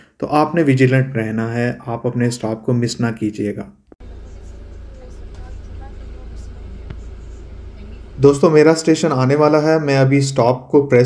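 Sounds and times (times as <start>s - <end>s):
bus interior rumble: 4.0s - 8.4s.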